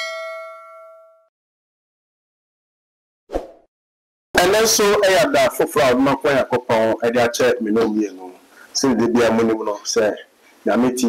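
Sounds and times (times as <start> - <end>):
notification bell chime: 0.0 - 1.2.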